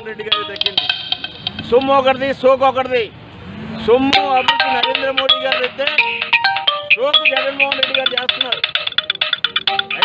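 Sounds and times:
quick electronic note melody: 0:00.0 - 0:02.1, 0:04.1 - 0:10.0.

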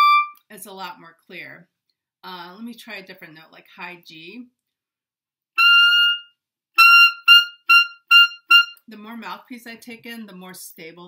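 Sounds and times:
clarinet playing a high note: 0:00.0 - 0:00.4, 0:05.6 - 0:08.8.

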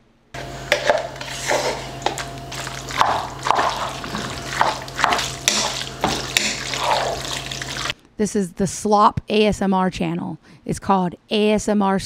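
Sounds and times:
steady low hum: 0:00.1 - 0:08.0
spoon stirring wet noodles: 0:00.4 - 0:08.0.

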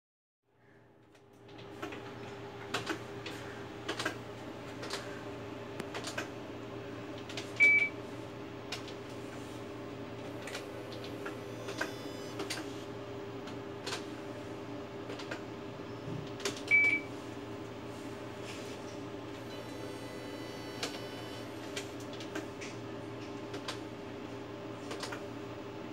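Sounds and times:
steady low hum: 0:00.6 - 0:25.9.

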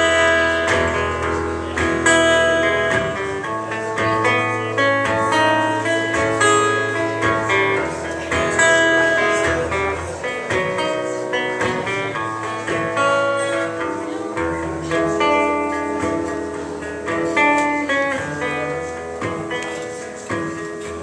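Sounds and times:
acoustic guitar playing: 0:00.0 - 0:21.0.

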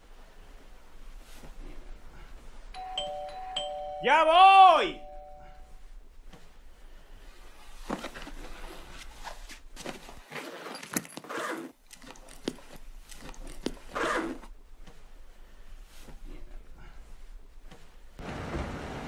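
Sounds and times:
clothes rustling: 0:00.0 - 0:04.0, 0:04.6 - 0:18.2
zipper runs: 0:07.9 - 0:14.5
handling clicks and knocks: 0:11.8 - 0:14.0.

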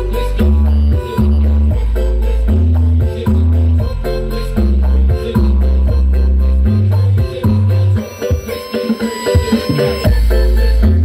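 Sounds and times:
loud dance music with heavy bass: 0:00.0 - 0:11.0.

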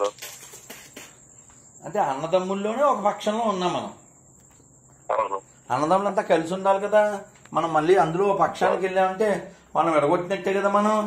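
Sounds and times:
crickets trilling: 0:00.0 - 0:11.0.

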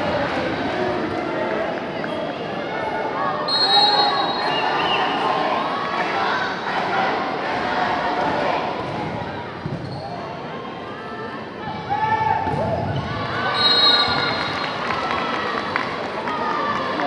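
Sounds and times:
crowd noise: 0:00.0 - 0:17.0
shoe squeaks on court floor: 0:09.7 - 0:10.2.

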